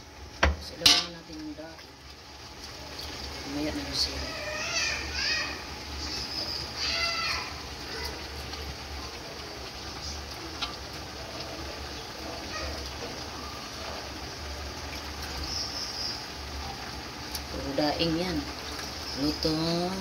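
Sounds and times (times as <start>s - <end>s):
food sizzling in wok: 0.0s - 20.0s.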